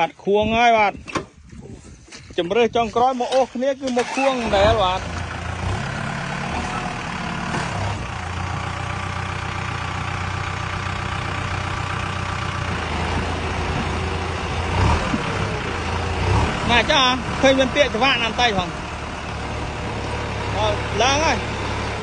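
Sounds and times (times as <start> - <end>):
tractor diesel engine running: 0.0 - 22.0.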